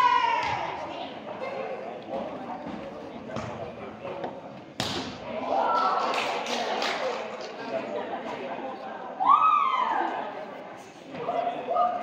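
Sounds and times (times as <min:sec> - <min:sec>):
indistinct chatter echoing: 0:00.0 - 0:12.0.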